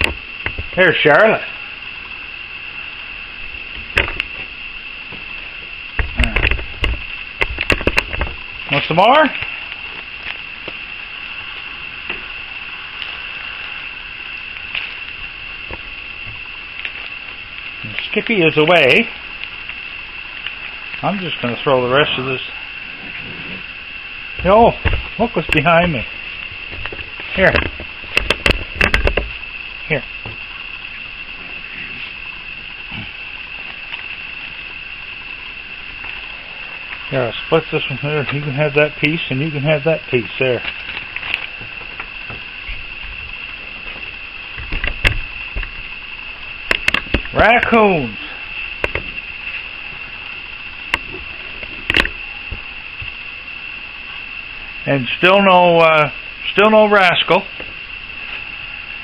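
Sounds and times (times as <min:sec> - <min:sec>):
night insects chorus: 0:00.0 - 0:59.0.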